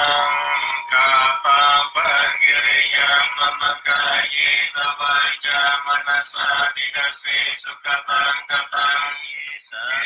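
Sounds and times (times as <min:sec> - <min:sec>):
music with person singing: 0:00.0 - 0:10.0.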